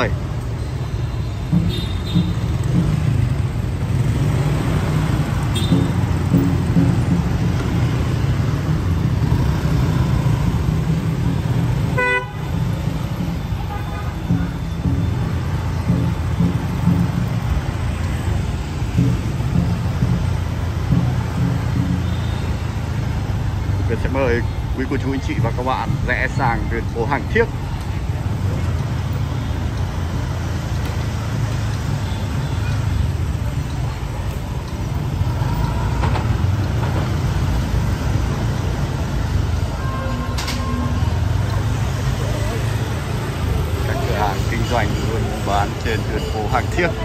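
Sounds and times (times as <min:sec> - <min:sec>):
motorbikes and cars passing: 0:00.0 - 0:47.0
vehicle horn toot: 0:01.6 - 0:02.4, 0:05.5 - 0:05.9, 0:11.9 - 0:12.5, 0:13.6 - 0:14.3.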